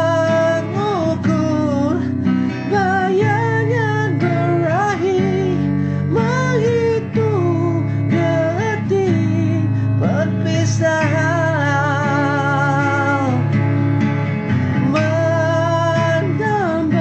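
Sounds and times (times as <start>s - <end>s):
acoustic guitar strumming chords: 0.0s - 17.0s
sliding lead melody: 0.0s - 17.0s.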